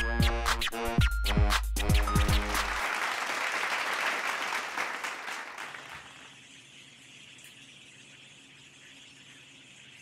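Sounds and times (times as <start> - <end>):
hip-hop music: 0.1 - 2.7
applause: 1.9 - 6.3.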